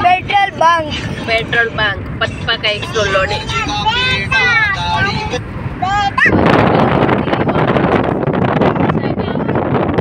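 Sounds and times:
people talking in a car: 0:00.0 - 0:10.0
road noise rumble: 0:00.0 - 0:10.0.

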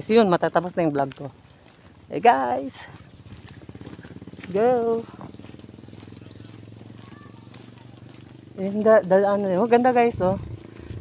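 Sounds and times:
birds chirping faintly: 0:00.0 - 0:11.0.

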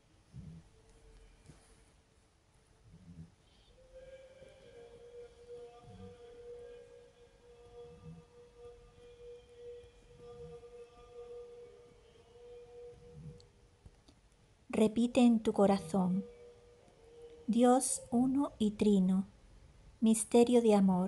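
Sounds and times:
soft slow background music: 0:00.0 - 0:21.0
woman speaking: 0:14.7 - 0:16.3, 0:17.5 - 0:19.3, 0:20.0 - 0:21.0.

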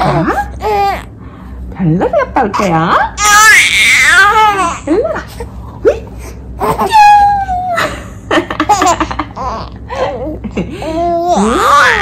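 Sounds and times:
baby laughing and squealing: 0:03.2 - 0:04.9.

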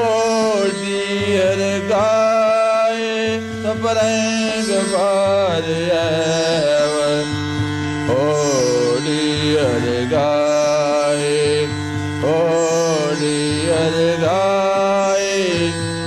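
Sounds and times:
instrumental accompaniment: 0:00.0 - 0:16.0
man singing: 0:00.0 - 0:16.0.

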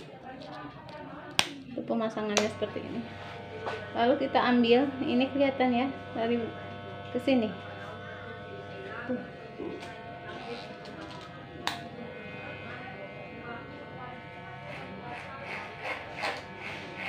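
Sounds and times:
hair clipper buzzing: 0:01.4 - 0:17.0.

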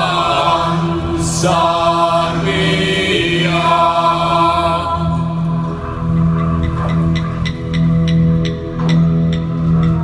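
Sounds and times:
voices chanting held tones: 0:00.0 - 0:05.7
steady low drone: 0:00.0 - 0:10.0.

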